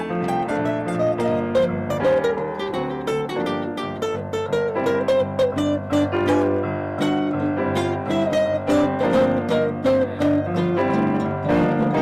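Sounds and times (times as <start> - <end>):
jazz guitar plucked notes: 0.0 - 12.0
piano accompanying: 0.0 - 12.0.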